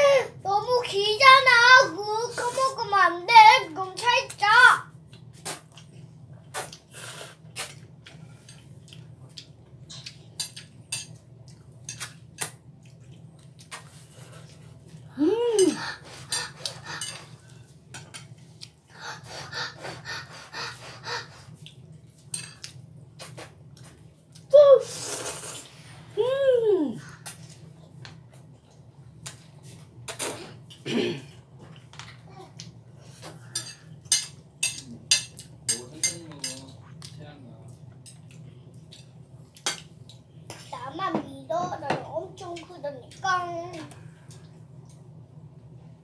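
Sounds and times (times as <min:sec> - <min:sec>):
chewing and mouth noises: 0:11.4 - 0:15.0
person humming: 0:15.1 - 0:15.8, 0:26.2 - 0:27.1
chopsticks clinking on a plate: 0:33.6 - 0:36.8.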